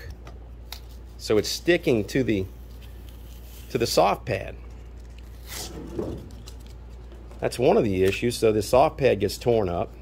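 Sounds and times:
sandpaper tearing off foam pad: 0:05.3 - 0:06.5.

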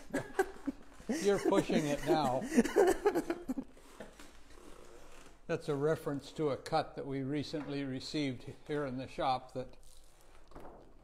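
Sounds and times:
man laughing: 0:00.0 - 0:03.6.

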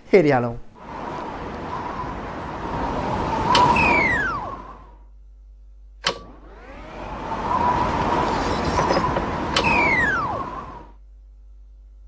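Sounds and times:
rushing wind sound effect: 0:00.8 - 0:05.1, 0:06.1 - 0:11.0.

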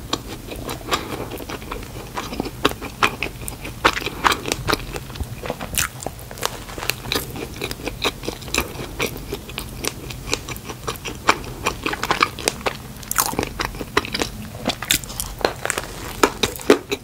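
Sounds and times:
biting and chewing donut: 0:00.0 - 0:17.0.

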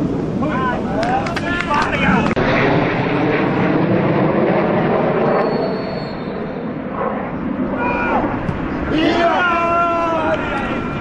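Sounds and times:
wind rumble on microphone: 0:00.0 - 0:11.0
players shouting: 0:07.8 - 0:11.0.

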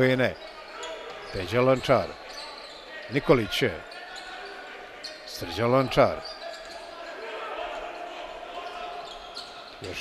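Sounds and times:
indoor sports hall ambience: 0:00.0 - 0:10.0.

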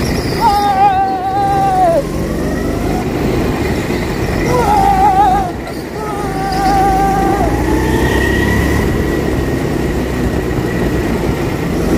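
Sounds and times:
tyres squealing: 0:00.0 - 0:02.6, 0:04.2 - 0:08.1
go-kart engine rumble: 0:00.0 - 0:11.9.

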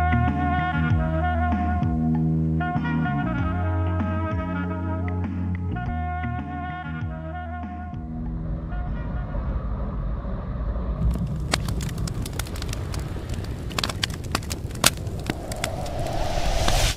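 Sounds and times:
low rumble: 0:08.0 - 0:16.9
fire crackles and pops: 0:11.0 - 0:16.9
hiss: 0:15.4 - 0:16.9.

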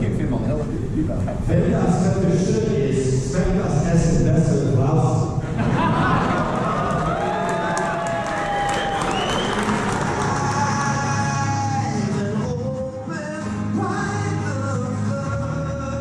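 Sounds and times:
audience clapping and cheering: 0:06.3 - 0:11.5
person singing with acoustic guitar: 0:10.0 - 0:16.0.

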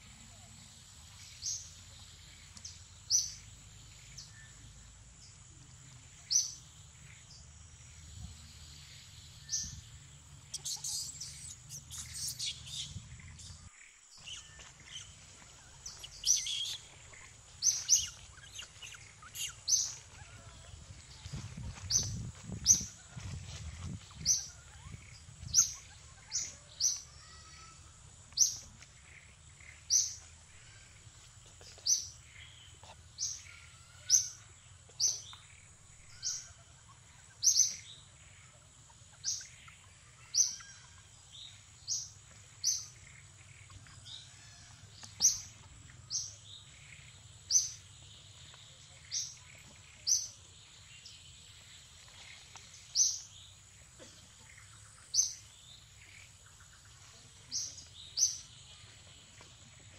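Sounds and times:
bird chirping: 0:00.0 - 0:22.9, 0:23.7 - 0:59.9.

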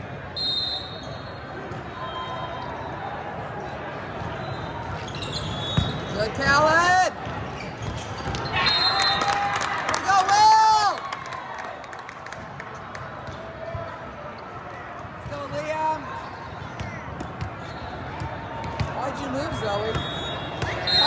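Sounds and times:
crowd chatter: 0:00.0 - 0:08.9, 0:11.6 - 0:21.0
referee's whistle: 0:00.4 - 0:01.4, 0:04.4 - 0:06.1, 0:08.4 - 0:09.4, 0:19.6 - 0:21.0.

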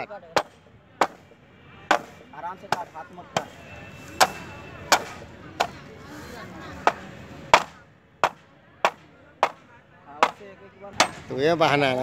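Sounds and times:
machete chopping bamboo: 0:00.4 - 0:01.2, 0:01.9 - 0:03.5, 0:04.2 - 0:05.8, 0:06.8 - 0:09.6, 0:10.2 - 0:11.3.

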